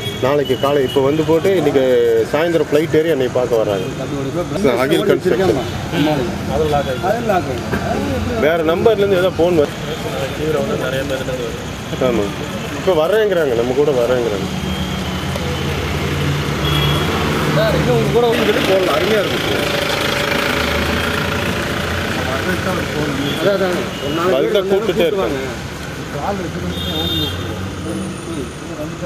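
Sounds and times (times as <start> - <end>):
voices talking indistinctly: 0.0 - 29.0.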